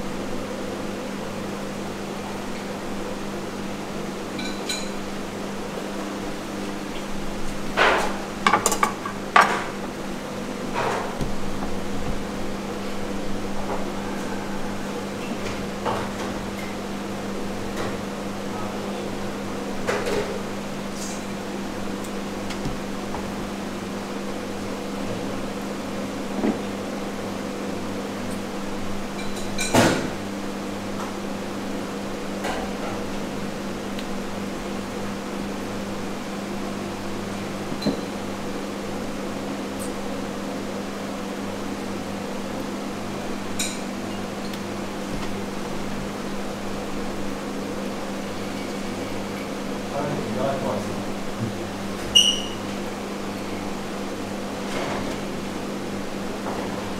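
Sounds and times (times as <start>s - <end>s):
machine hum: 0.0s - 29.5s.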